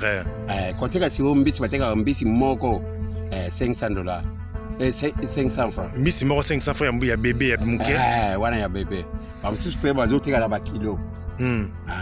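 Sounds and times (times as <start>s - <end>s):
background music: 0.0s - 12.0s
man speaking: 4.8s - 12.0s.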